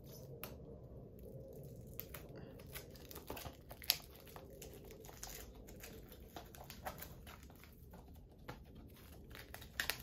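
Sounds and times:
plastic wrapping crinkling: 0:01.2 - 0:10.0.

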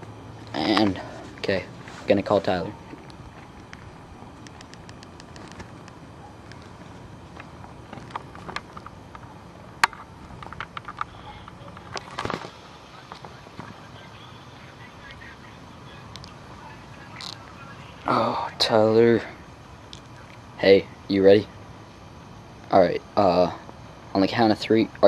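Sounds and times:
low steady hum: 0:00.0 - 0:25.0
phone and camera handling clicks: 0:04.4 - 0:06.7, 0:07.4 - 0:12.5.

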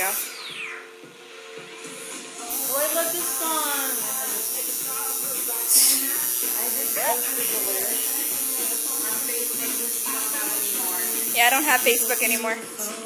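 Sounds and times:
tattoo machine buzzing: 0:00.0 - 0:00.8, 0:02.5 - 0:13.0.

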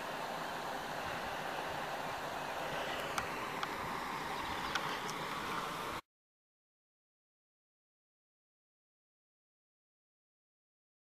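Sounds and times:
outdoor background hiss: 0:00.0 - 0:06.0
faint high clicks: 0:04.5 - 0:05.6.

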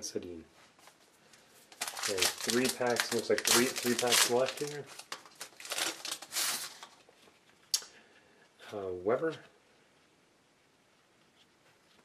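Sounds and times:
card wrapper rustling: 0:01.6 - 0:07.5.

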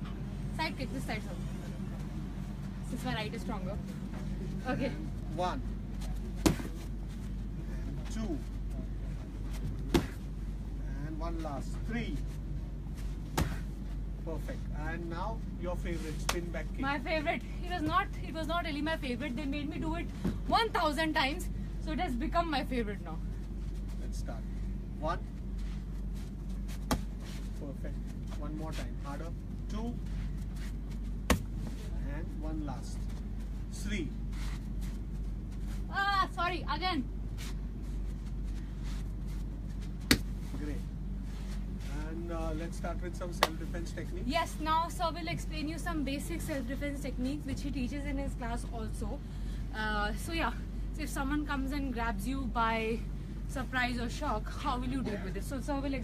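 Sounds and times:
kick impact smack: 0:06.4 - 0:06.8, 0:09.8 - 0:10.2, 0:13.3 - 0:13.7, 0:26.8 - 0:27.2, 0:31.2 - 0:31.5, 0:40.0 - 0:40.3.

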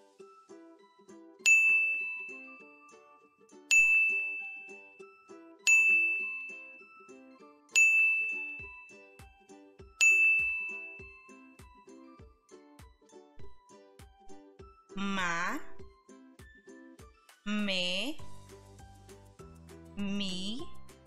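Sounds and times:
soft background music: 0:00.0 - 0:21.0
bell-like ding: 0:01.5 - 0:02.7, 0:03.7 - 0:05.0, 0:05.7 - 0:06.8, 0:07.7 - 0:09.1, 0:10.0 - 0:11.4.

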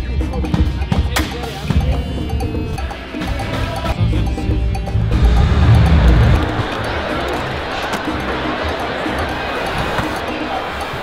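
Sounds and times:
music with heavy bass: 0:00.0 - 0:11.0.

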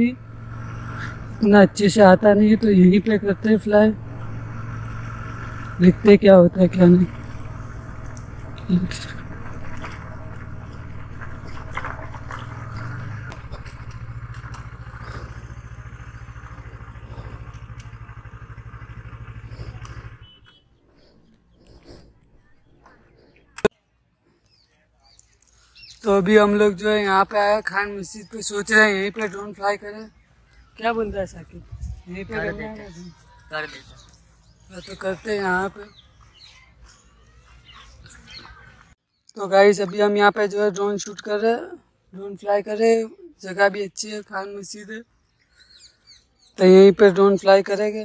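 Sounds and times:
motorcycle engine idling: 0:00.0 - 0:23.7
faint outdoor background: 0:00.0 - 0:48.0.

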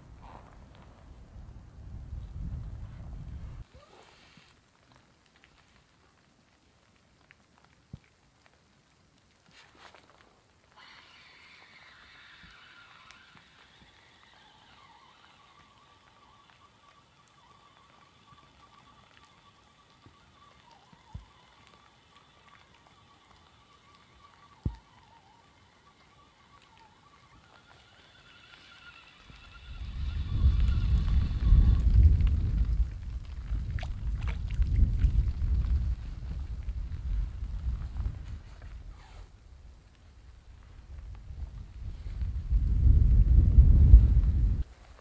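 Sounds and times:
wind gusts on microphone: 0:00.0 - 0:03.8, 0:29.3 - 0:44.7
fishing reel whirring: 0:10.8 - 0:32.6.

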